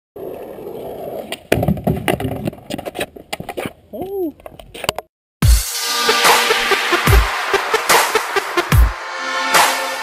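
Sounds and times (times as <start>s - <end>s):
skateboard scraping curb edge: 0.2s - 3.8s
skateboard wheels rolling on asphalt: 0.2s - 4.9s
skateboard hitting curb: 1.3s - 3.7s.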